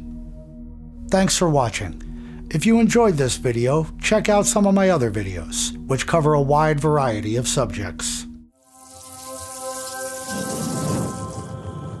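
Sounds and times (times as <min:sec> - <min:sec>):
held music chord: 0:00.0 - 0:08.5.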